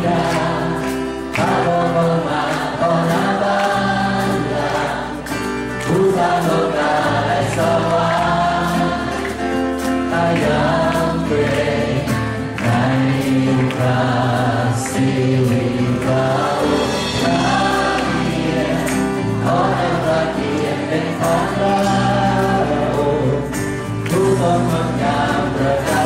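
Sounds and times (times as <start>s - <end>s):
man singing: 0.0s - 5.0s, 5.8s - 9.0s, 9.8s - 12.1s, 12.7s - 26.0s
acoustic guitar: 0.0s - 26.0s
other voices singing along: 0.0s - 26.0s.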